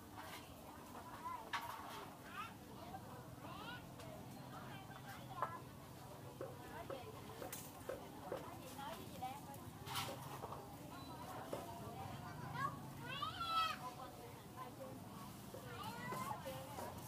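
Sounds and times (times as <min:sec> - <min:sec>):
background chatter of voices: 0:00.0 - 0:17.0.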